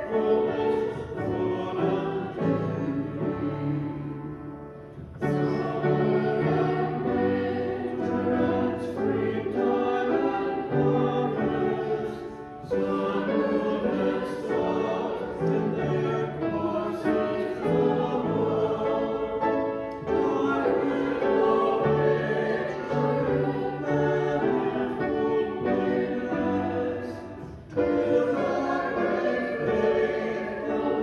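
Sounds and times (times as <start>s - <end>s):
congregation singing a hymn: 0.0s - 31.0s.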